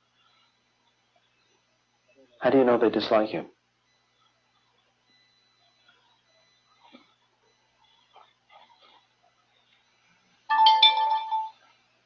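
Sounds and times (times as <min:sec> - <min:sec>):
ringing chime: 0:10.5 - 0:11.6.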